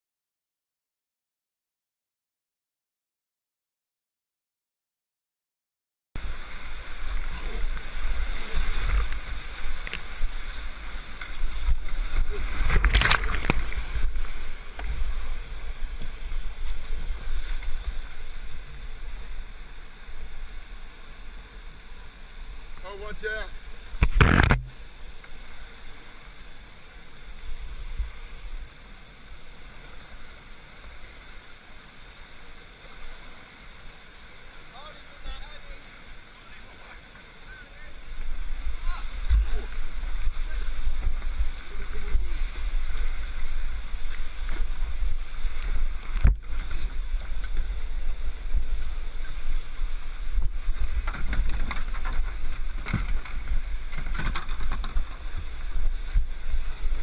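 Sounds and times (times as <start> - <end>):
wind noise on microphone: 6.2 - 19.6, 23.9 - 24.8, 38.1 - 57.0
whitewater rapids rushing: 6.2 - 54.0
loud thump: 24.0 - 24.7.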